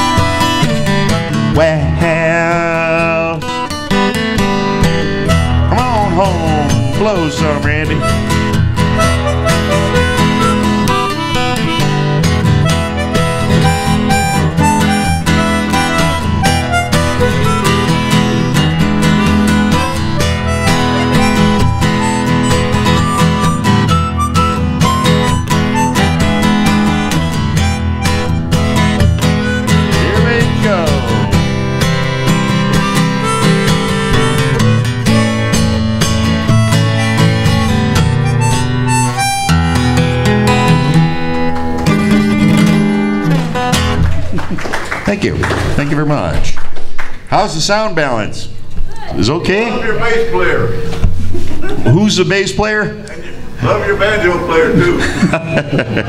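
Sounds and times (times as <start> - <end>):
harmonica melody: 0.0 - 44.0
strummed acoustic guitar: 0.0 - 44.3.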